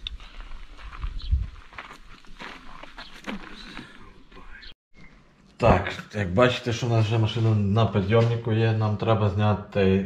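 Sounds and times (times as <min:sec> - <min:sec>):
footsteps on gravel: 0:00.0 - 0:04.4.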